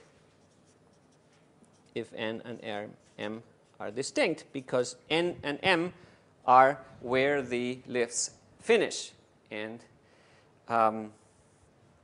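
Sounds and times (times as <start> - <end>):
faint writing on a board: 0.0 - 2.2.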